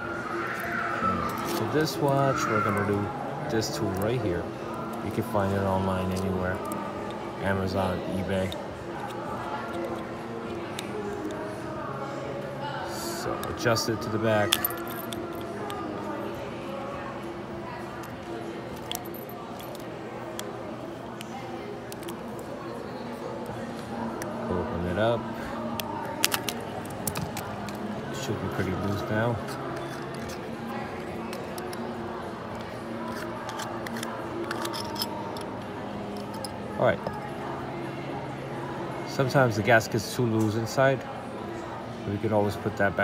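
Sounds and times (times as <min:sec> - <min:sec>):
steady background hum: 0:00.0 - 0:43.0
metal clicks and scrapes: 0:18.0 - 0:20.5, 0:25.7 - 0:27.9, 0:29.4 - 0:30.5, 0:32.6 - 0:36.6.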